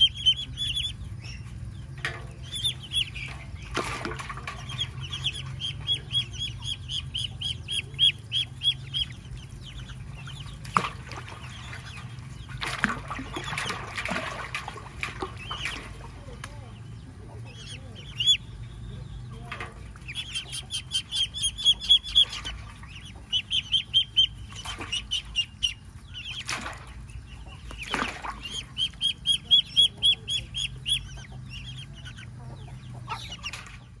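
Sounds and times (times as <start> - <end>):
ducklings peeping: 0.0 - 34.0.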